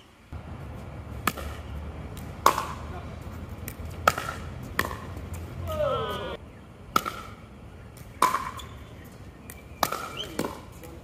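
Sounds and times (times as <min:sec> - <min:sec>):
paddles hitting plastic ball: 0:03.6 - 0:05.4.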